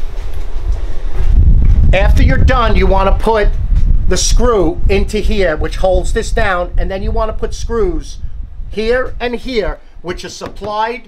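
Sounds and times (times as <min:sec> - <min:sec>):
low rumbling microphone handling: 0:00.0 - 0:11.0.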